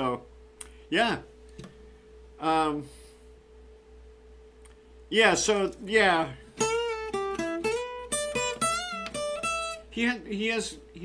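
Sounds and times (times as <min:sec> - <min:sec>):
acoustic guitar lead lick: 0:05.8 - 0:10.2.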